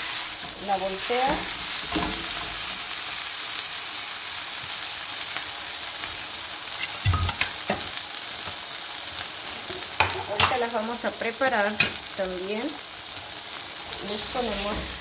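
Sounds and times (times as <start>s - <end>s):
tortilla sizzling in hot oil: 0.0s - 15.0s.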